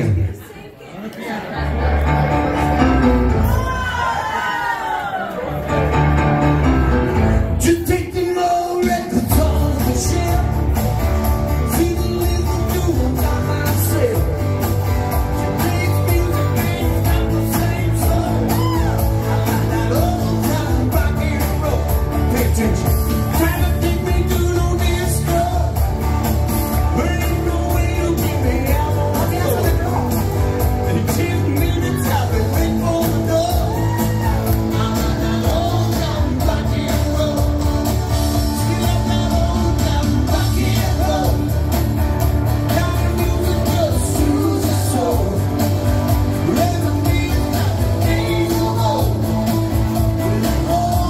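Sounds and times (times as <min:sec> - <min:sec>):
bass line: 0:01.6 - 0:04.2, 0:05.6 - 0:51.0
rock and roll on guitars: 0:01.8 - 0:04.3, 0:05.5 - 0:51.0
person singing: 0:05.9 - 0:51.0.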